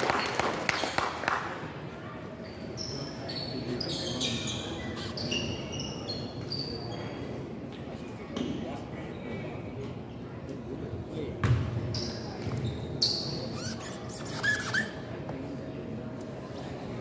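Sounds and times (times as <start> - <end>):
echoing indistinct chatter: 0.0 - 17.0
sneaker squeaks: 2.4 - 7.3, 11.4 - 15.1.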